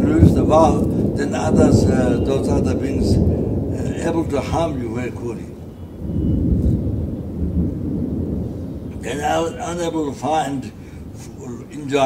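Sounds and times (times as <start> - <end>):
speech: 0.0 - 3.2, 3.8 - 5.5, 9.0 - 12.0
loud low bass rumble: 0.0 - 11.4.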